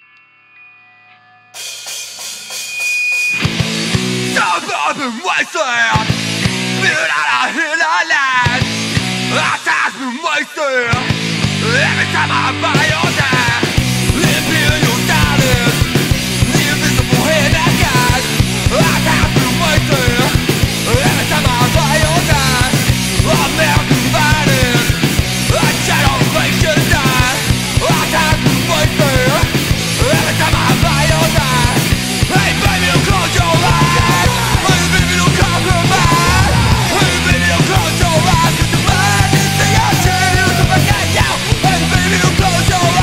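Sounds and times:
drums and cymbals crashing: 1.5 - 7.4, 8.3 - 9.6, 10.9 - 43.0
hardcore punk band playing: 1.5 - 43.0
distorted guitars and bass: 3.3 - 5.2, 5.9 - 7.6, 8.3 - 9.7, 10.9 - 43.0
shouted vocals: 6.8 - 8.6, 16.4 - 43.0.

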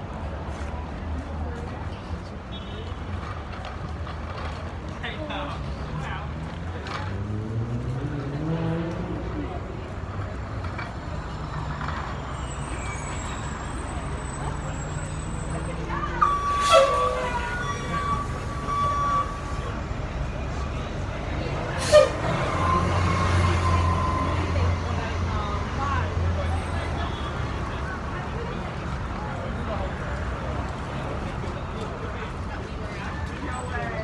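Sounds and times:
bus engine rumble: 0.0 - 34.0
street traffic: 0.0 - 34.0
steady beep: 16.2 - 19.7
bus air brake hiss: 21.8 - 22.4.

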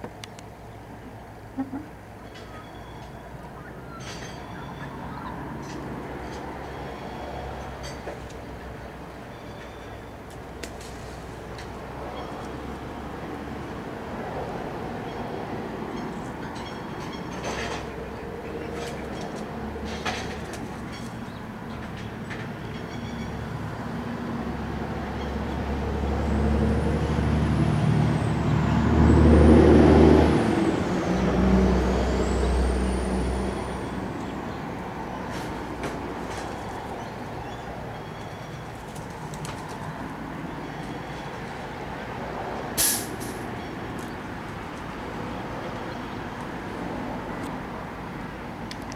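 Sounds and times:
heavy vehicle engine rumble: 0.0 - 48.9.

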